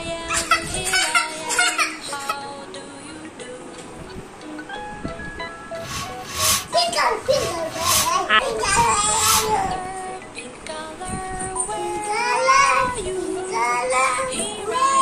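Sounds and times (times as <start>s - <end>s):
child singing: 0.0s - 3.6s, 6.7s - 15.0s
background music: 0.8s - 11.0s
balloon pump whooshes: 5.8s - 9.6s
child talking: 6.7s - 9.7s.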